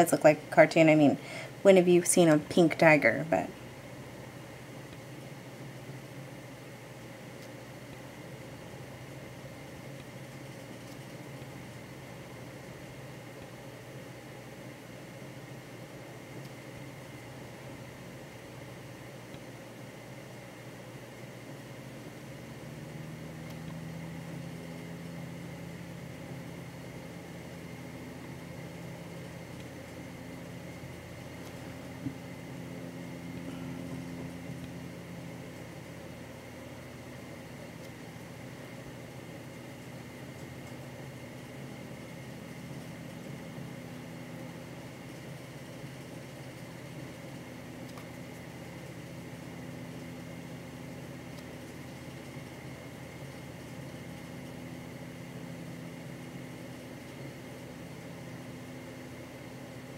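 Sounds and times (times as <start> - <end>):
low mechanical hum: 0.0 - 59.9.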